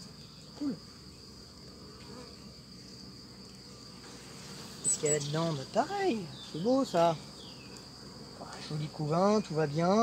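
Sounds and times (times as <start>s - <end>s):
high-pitched cricket trill: 0.0s - 10.0s
honeybees humming: 0.0s - 10.0s.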